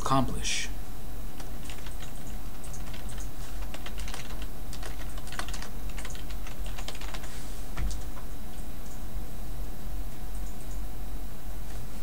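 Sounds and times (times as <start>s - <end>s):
steady low hum: 0.0s - 12.0s
keyboard typing: 1.4s - 7.3s.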